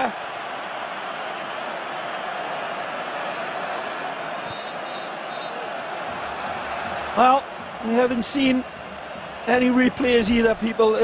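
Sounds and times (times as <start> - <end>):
stadium crowd din: 0.0 - 11.0
faint high whistles: 4.5 - 5.6.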